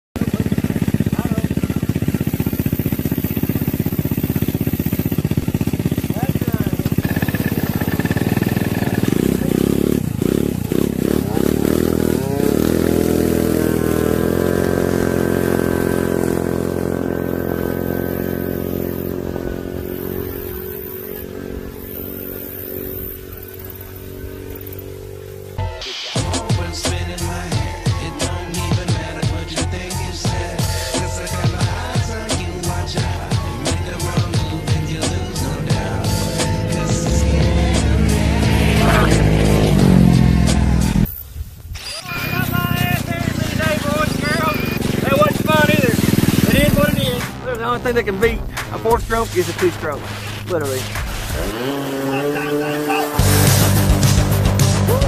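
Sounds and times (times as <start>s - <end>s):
scooter engines revving: 0.0s - 41.2s, 41.8s - 55.0s
music: 25.6s - 41.1s, 45.1s - 51.4s, 53.2s - 55.0s.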